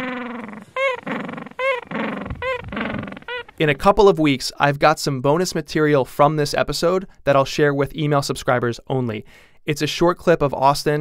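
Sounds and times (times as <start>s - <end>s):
dog whining: 0.0s - 3.6s
dog yipping: 0.0s - 3.6s.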